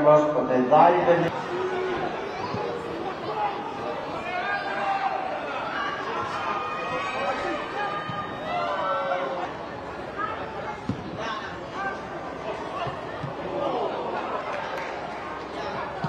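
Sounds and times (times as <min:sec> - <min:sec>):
men calling out and talking: 0:00.6 - 0:14.6.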